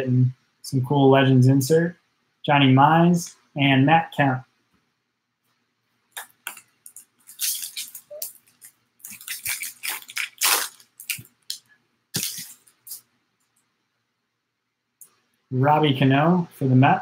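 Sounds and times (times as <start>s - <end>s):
wrapper tearing and crinkling: 7.2s - 13.0s.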